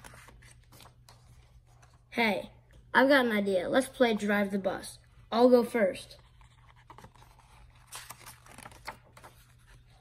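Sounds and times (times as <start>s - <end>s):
paper page turning: 0.0s - 2.0s, 6.2s - 10.0s.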